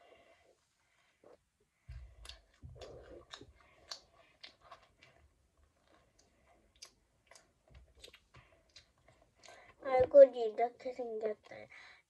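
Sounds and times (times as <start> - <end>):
child chewing: 0.0 - 9.8.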